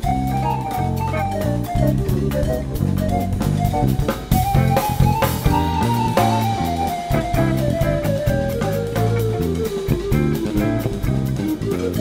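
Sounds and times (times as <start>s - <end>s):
jazz quartet playing: 0.0s - 12.0s.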